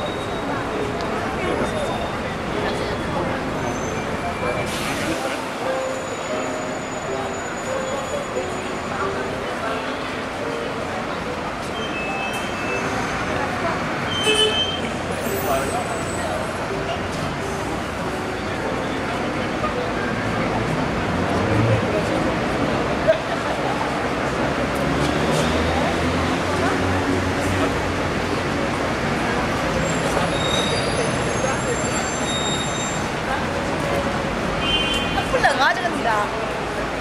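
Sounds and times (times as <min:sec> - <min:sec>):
high squealing brakes: 0:00.0 - 0:20.4, 0:29.2 - 0:35.6
indistinct voices: 0:00.0 - 0:37.0
road traffic and buses: 0:00.0 - 0:37.0.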